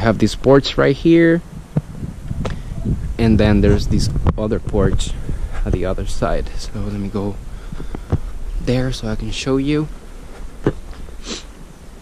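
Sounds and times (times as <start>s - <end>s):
low rumble on microphone: 0.0s - 11.8s
short breathy hiss: 11.0s - 11.6s.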